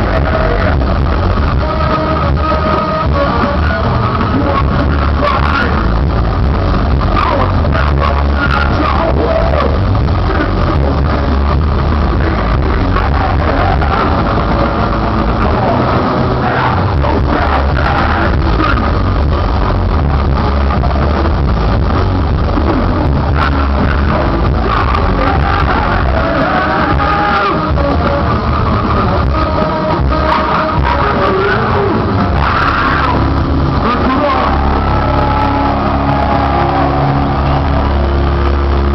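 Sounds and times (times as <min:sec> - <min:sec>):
metal band playing live: 0:00.0 - 0:38.9
person singing: 0:22.6 - 0:38.3.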